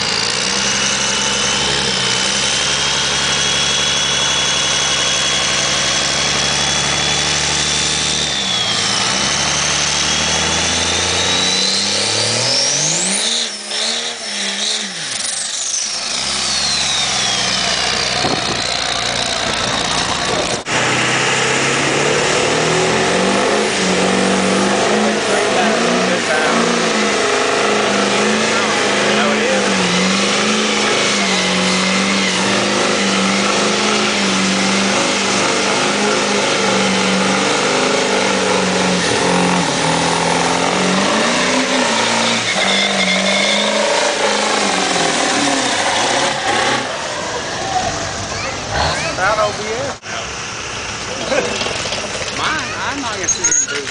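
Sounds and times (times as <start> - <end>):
tyres squealing on pavement: 0.0 - 20.7, 22.6 - 50.3, 51.0 - 53.9
diesel engine revving high: 0.0 - 53.9
truck engine winding down: 0.0 - 53.9.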